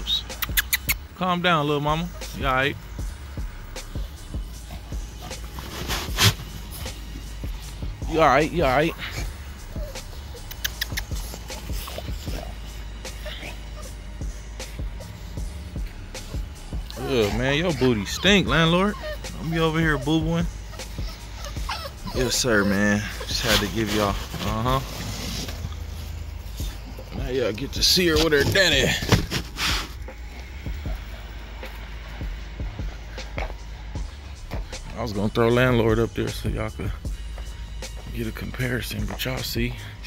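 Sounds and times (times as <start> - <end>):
dog paws clicking on turf: 4.0 - 13.4, 14.3 - 39.8.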